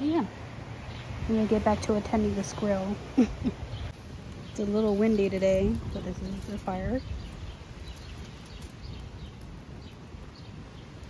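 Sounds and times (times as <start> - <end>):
wind gusting on microphone: 0.0 - 11.0.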